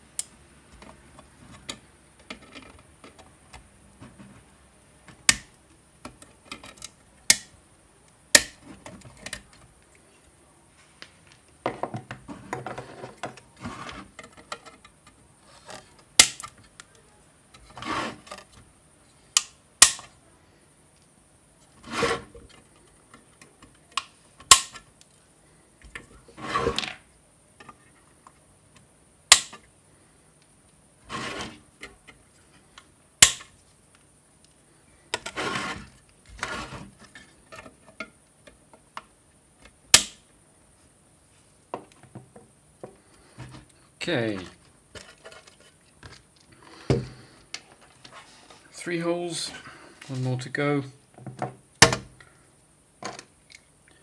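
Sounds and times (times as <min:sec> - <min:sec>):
rubbing and scraping: 0:12.2 - 0:16.0, 0:17.5 - 0:18.6, 0:21.7 - 0:22.8, 0:26.2 - 0:27.0, 0:31.0 - 0:32.7, 0:35.2 - 0:38.0, 0:43.0 - 0:48.7.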